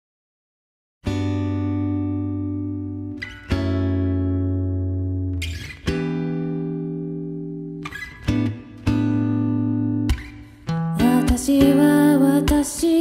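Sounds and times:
guitar chords ringing: 1.0 - 13.0.

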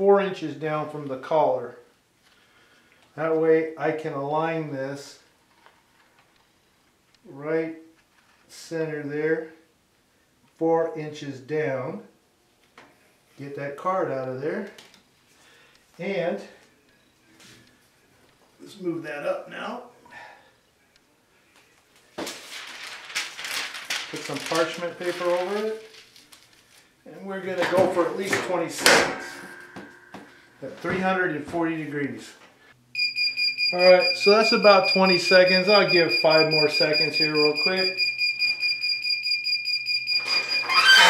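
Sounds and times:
parchment paper rustling: 21.6 - 31.2
timer alarm beeping: 33.0 - 41.0.

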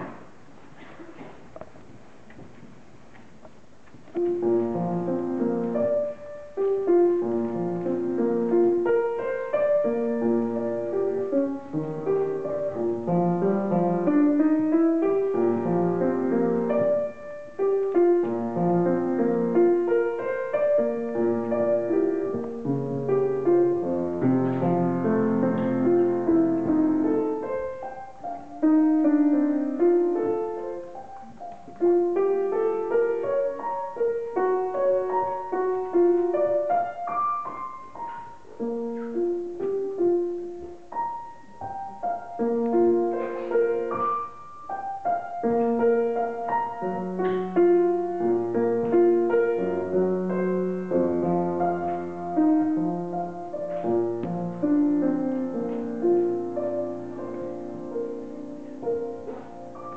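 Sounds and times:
solo piano: 0.0 - 59.9.

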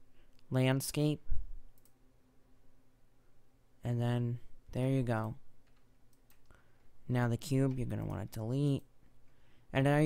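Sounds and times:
narrator speaking: 0.4 - 1.4, 3.8 - 5.4, 7.0 - 8.9, 9.7 - 10.0
faint computer mouse click: 1.7 - 2.0.

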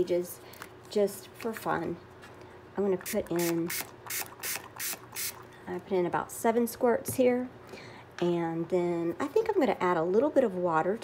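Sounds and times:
spray bottle squirting: 3.0 - 5.4.

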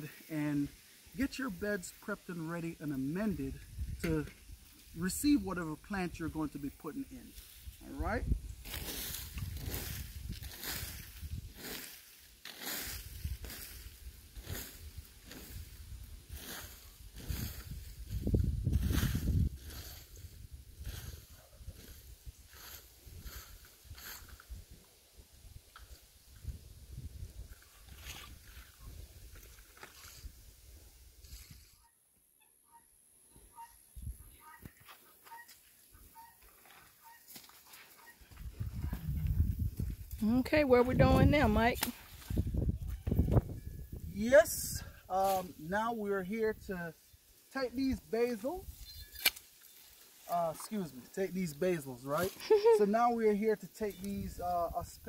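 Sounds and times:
rake scratching through stalks: 8.6 - 24.6, 45.2 - 45.7, 47.4 - 52.9.

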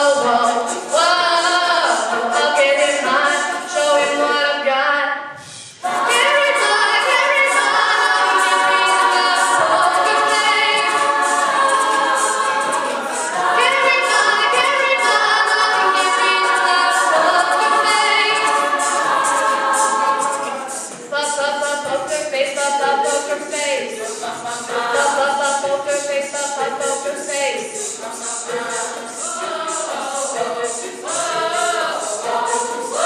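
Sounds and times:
mixed choir singing a cappella: 0.0 - 33.0.

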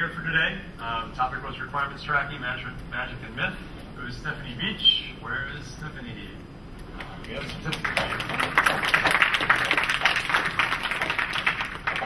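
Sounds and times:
audience applauding: 7.2 - 12.0.

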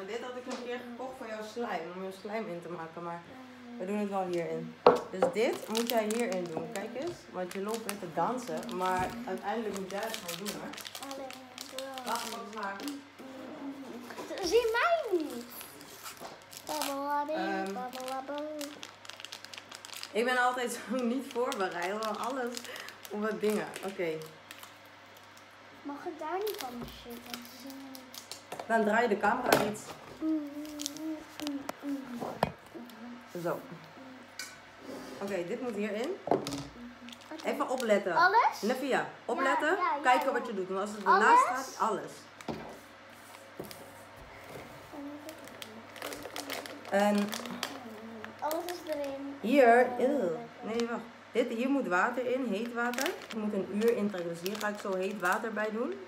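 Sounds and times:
packet crinkling: 5.4 - 13.1, 14.3 - 25.5, 26.3 - 28.7, 30.2 - 33.0, 35.6 - 38.0, 44.4 - 49.2, 52.2 - 56.0
plastic bag rustling: 5.4 - 25.4, 26.2 - 33.8, 34.8 - 38.7, 40.1 - 50.9, 51.9 - 56.0
child singing wordless tune: 16.8 - 18.6, 30.2 - 32.2.

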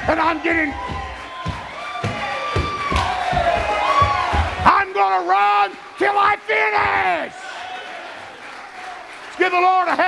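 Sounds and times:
drum hits: 0.0 - 4.8
congregation shouting and cheering: 0.0 - 10.0.

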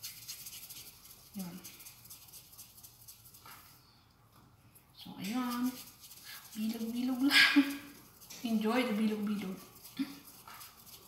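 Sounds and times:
palms rubbing dough: 0.0 - 3.9, 5.2 - 11.0.

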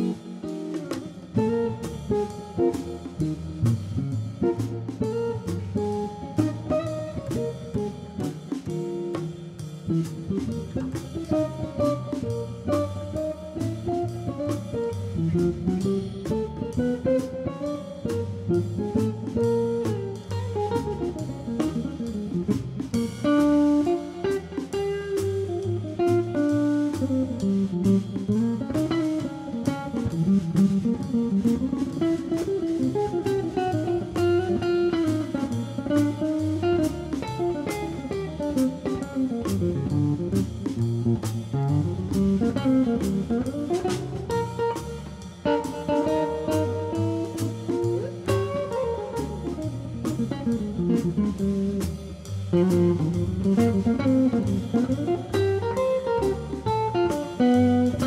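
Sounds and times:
drum kit with cymbal strokes: 0.0 - 58.0
electric guitar melody: 0.0 - 58.0
plucked upright bass: 39.4 - 45.2, 46.3 - 58.0.

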